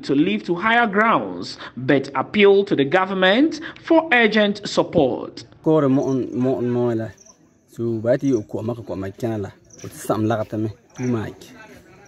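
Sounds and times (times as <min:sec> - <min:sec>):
man speaking: 0:00.0 - 0:12.0
insects trilling: 0:05.8 - 0:12.0.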